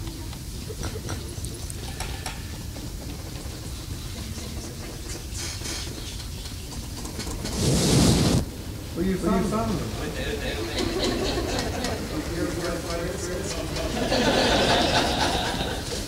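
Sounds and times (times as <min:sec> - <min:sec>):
loud rubbing noise: 0:07.0 - 0:08.5.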